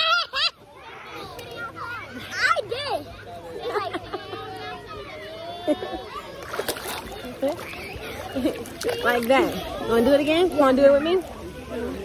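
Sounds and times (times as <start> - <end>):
children shouting and laughing: 0.0 - 12.0.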